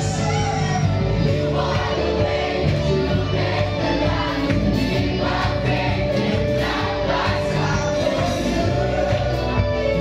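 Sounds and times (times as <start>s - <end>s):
amplified music: 0.0s - 10.0s
choir singing gospel song: 0.0s - 10.0s.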